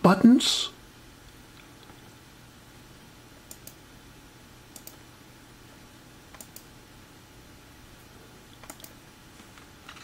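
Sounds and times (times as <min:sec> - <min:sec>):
computer mouse clicks: 0:03.5 - 0:03.8, 0:04.7 - 0:05.0, 0:06.3 - 0:06.7, 0:08.6 - 0:09.0.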